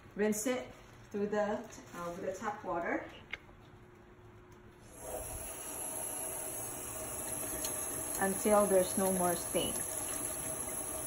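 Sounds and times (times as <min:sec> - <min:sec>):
tap water running into steel sink: 0:05.0 - 0:11.0.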